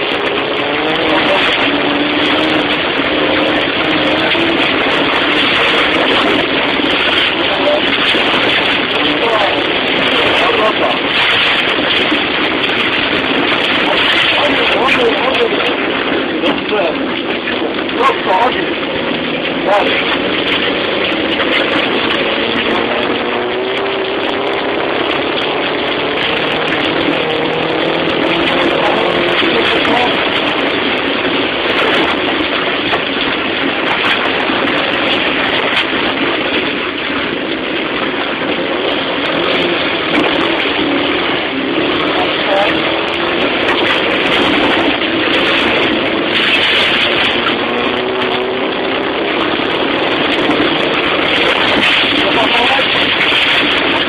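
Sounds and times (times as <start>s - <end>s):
car engine revving: 0.0s - 54.0s
tyres on wet slushy road: 0.0s - 54.0s.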